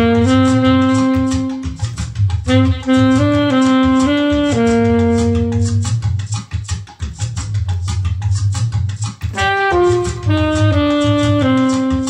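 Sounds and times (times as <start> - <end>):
bass line: 0.0 - 12.0
percussion pattern: 0.0 - 12.0.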